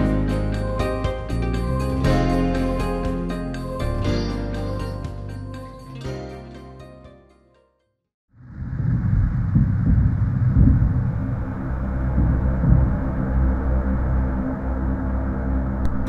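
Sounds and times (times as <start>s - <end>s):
loud low rumble: 8.4s - 16.0s.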